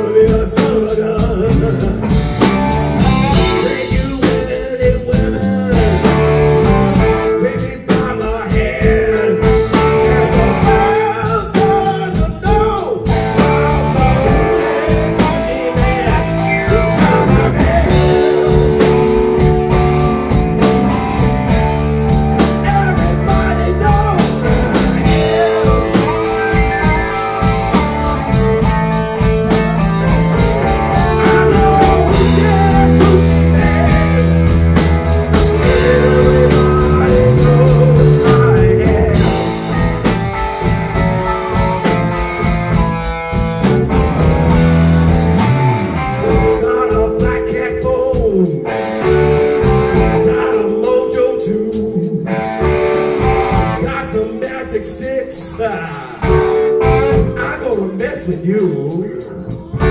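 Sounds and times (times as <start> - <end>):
man singing: 0.0 - 40.3, 46.2 - 59.9
rock and roll band playing: 0.0 - 59.9.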